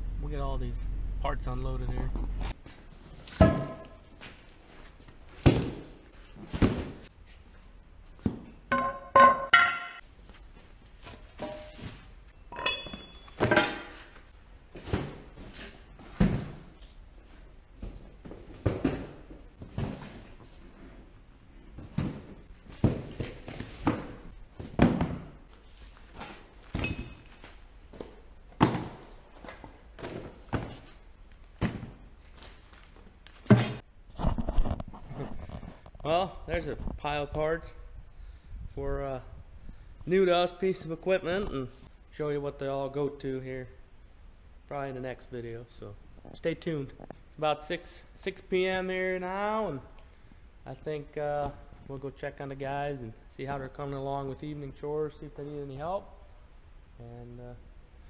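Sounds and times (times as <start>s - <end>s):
boxes thunking on concrete floor: 3.2s - 4.4s, 5.3s - 7.1s, 8.2s - 10.0s, 12.8s - 16.9s, 17.8s - 20.6s, 21.8s - 25.4s, 26.0s - 31.0s, 31.6s - 32.6s, 33.4s - 33.8s.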